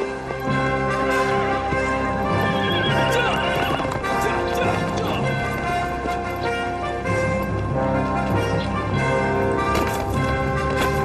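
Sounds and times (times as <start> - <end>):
background music: 0.0 - 11.0
horse hooves clip-clopping: 1.3 - 11.0
horse whinnying: 2.4 - 4.0.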